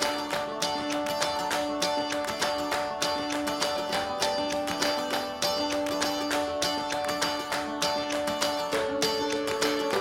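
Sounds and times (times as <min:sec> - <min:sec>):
plucked strings instrumental: 0:00.0 - 0:10.0.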